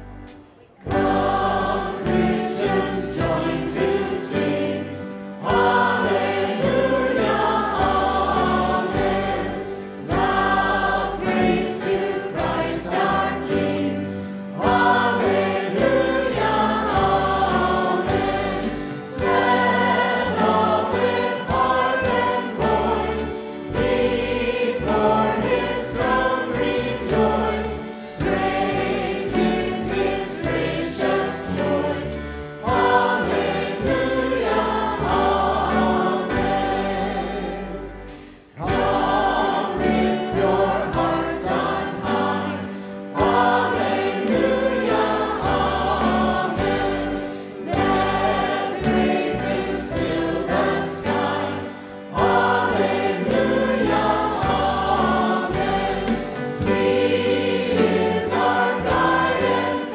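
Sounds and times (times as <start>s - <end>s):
band accompaniment: 0.0s - 59.9s
choir singing a hymn: 0.0s - 59.9s.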